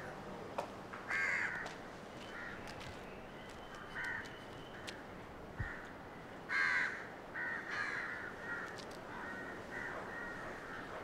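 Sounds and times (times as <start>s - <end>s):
crow cawing: 1.1s - 1.7s, 4.0s - 4.2s, 6.5s - 10.9s.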